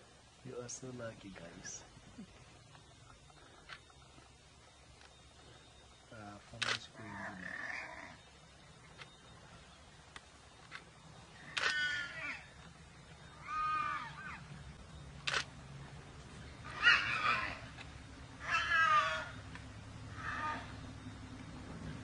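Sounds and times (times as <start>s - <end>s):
warthog squealing: 16.6s - 17.7s.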